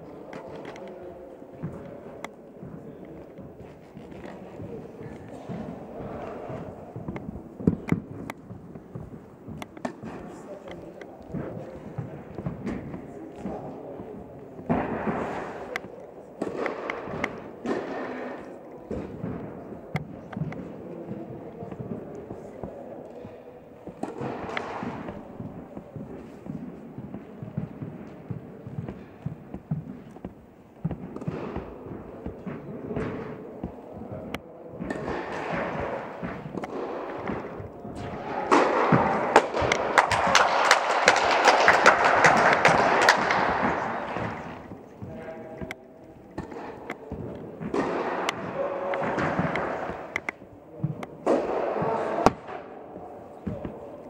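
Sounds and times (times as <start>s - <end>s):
tennis balls struck and bouncing: 1.6s - 54.0s.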